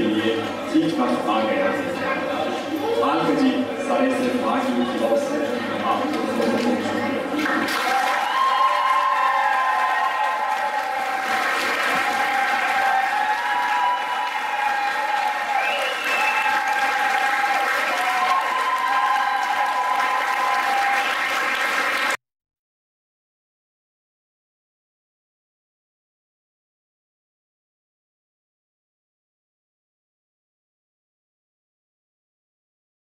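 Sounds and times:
audience applauding: 0:07.4 - 0:22.2.

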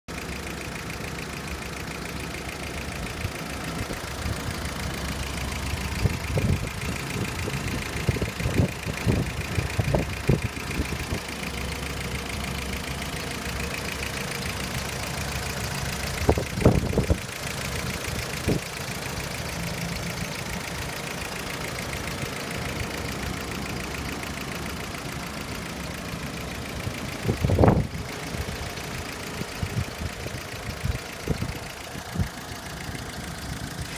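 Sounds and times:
car engine idling: 0:00.1 - 0:33.9.

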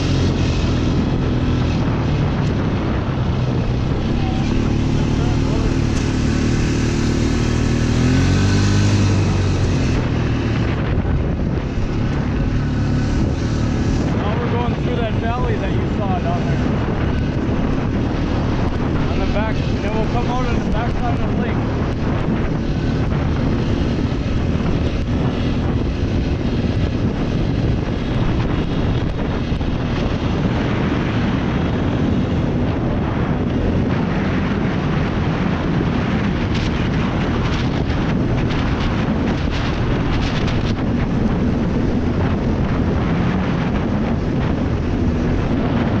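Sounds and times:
quad engine running: 0:00.0 - 0:46.0
wind buffeting microphone: 0:00.0 - 0:46.0.

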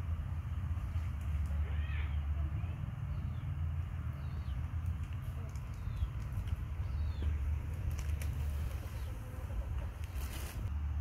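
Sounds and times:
fan air buffeting microphone: 0:00.0 - 0:11.0.

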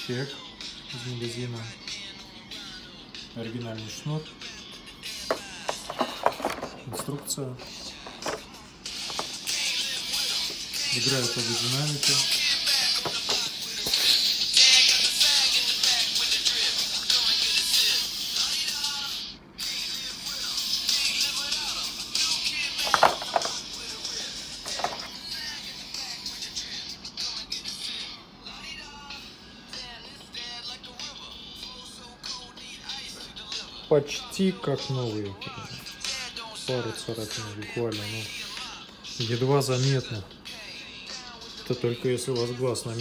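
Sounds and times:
thin music from headphones: 0:00.0 - 0:43.0.

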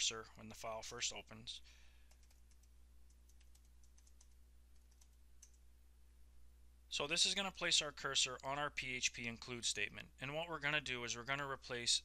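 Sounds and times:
keyboard typing: 0:02.0 - 0:05.6.

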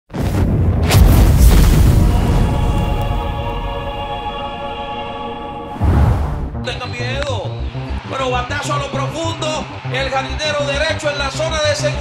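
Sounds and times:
deep rumbling boom: 0:00.2 - 0:03.9, 0:05.8 - 0:06.8
rushing burst: 0:00.5 - 0:03.3.

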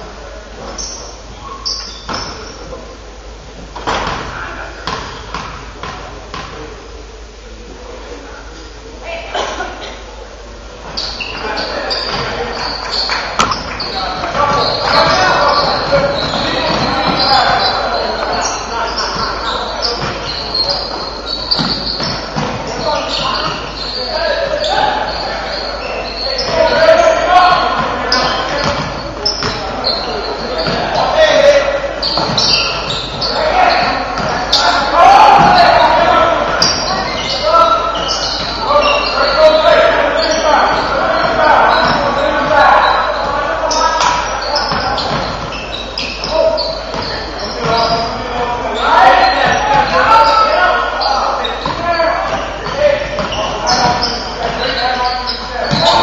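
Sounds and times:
shouting and chatter: 0:06.6 - 0:56.0
ball bouncing on wooden floor: 0:13.4 - 0:17.6.

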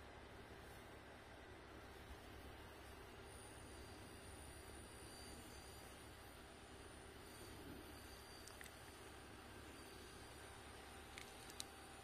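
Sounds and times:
faint outdoor hiss: 0:00.0 - 0:12.0
thin high steady tone: 0:00.0 - 0:12.0.

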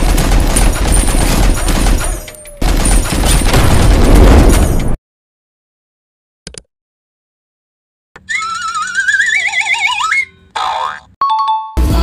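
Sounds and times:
wavering tones climbing in pitch: 0:08.3 - 0:11.0.

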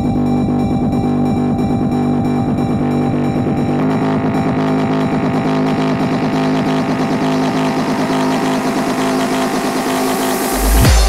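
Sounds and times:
low synth chords: 0:00.0 - 0:11.0
rising noise sweep: 0:07.2 - 0:11.0
deep sub-bass hit: 0:10.4 - 0:11.0.

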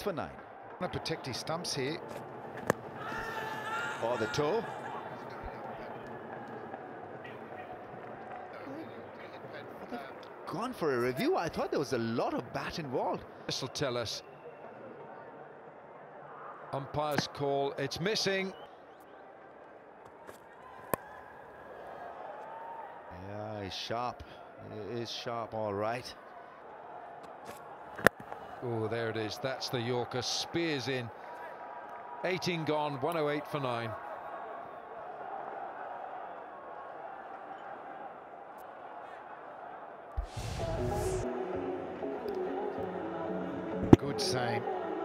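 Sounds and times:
stadium crowd hum: 0:00.0 - 0:45.0
cricket bat hitting ball: 0:02.5 - 0:03.0.

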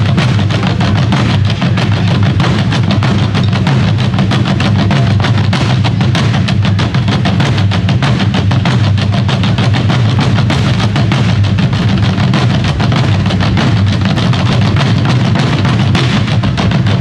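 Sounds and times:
barrel drums beaten with sticks: 0:00.0 - 0:17.0
music: 0:00.0 - 0:17.0.

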